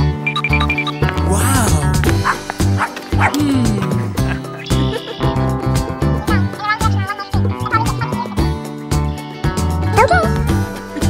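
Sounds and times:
cheerful background music: 0.0 - 11.0.

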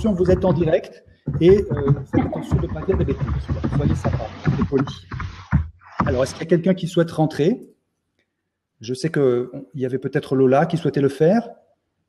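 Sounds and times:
man talking: 0.0 - 5.0, 6.0 - 7.7, 8.8 - 11.6.

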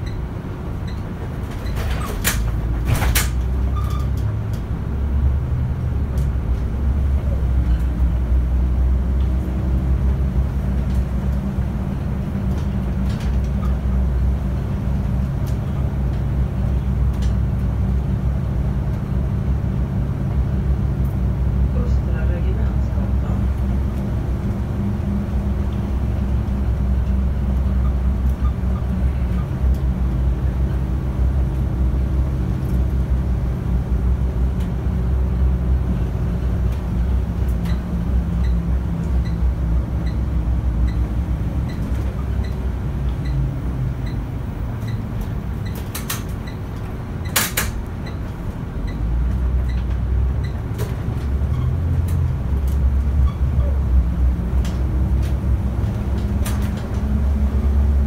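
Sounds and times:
light interior rattles: 0.0 - 4.7, 21.7 - 58.0
bus engine drone: 0.0 - 58.0
tyre and road noise: 0.0 - 58.0.

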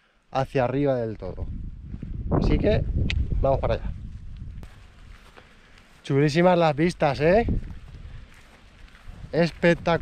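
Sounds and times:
wind on microphone: 1.1 - 5.2, 7.0 - 10.0
footsteps on grassy path: 1.4 - 10.0.

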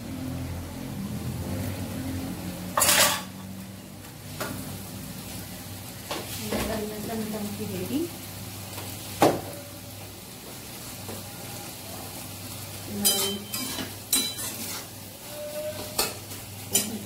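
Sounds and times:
vegetables sizzling in pan: 0.0 - 17.0
spatula stirring in metal pan: 12.9 - 17.0.

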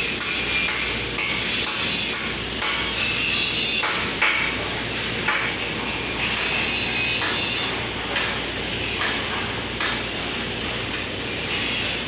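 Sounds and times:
fan noise: 0.0 - 12.0.

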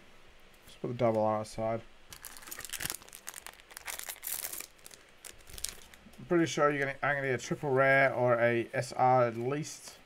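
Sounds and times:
cards rustling and clicking: 2.1 - 6.1
wrapper crinkling: 2.1 - 6.2.

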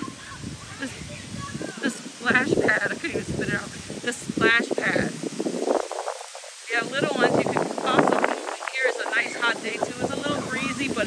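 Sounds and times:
person speaking: 0.0 - 5.3, 6.4 - 11.0
fountains spraying water: 0.0 - 11.0.

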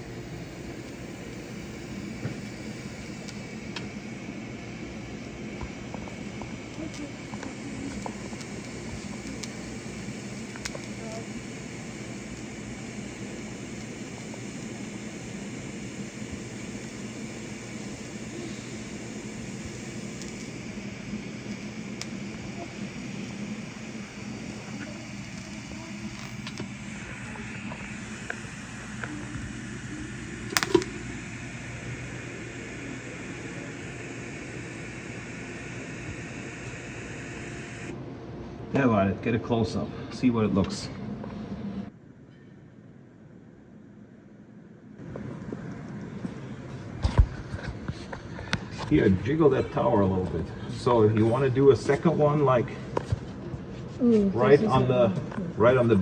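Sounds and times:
welding arc buzzing: 0.0 - 38.0
sharp click: 30.5 - 31.0.

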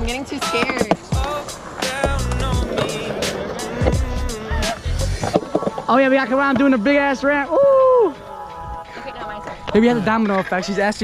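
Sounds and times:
background music with a beat: 0.0 - 5.9
skateboard wheels rolling on concrete: 0.0 - 11.0.

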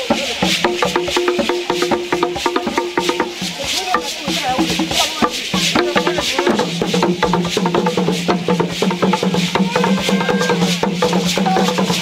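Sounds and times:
knocking percussion strikes: 0.0 - 12.0
shaker rattles: 0.0 - 12.0
voices holding long notes: 3.1 - 6.8, 9.4 - 12.0.

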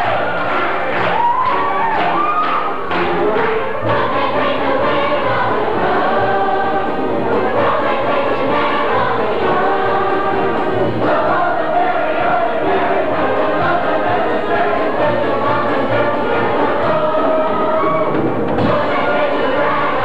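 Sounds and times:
large chorus singing: 0.0 - 20.0
musical accompaniment: 0.0 - 20.0.

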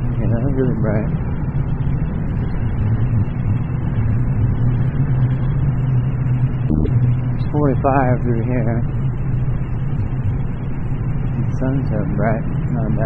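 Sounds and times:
motorcycle engine cruising: 0.0 - 13.0
wind and road noise: 0.0 - 13.0.

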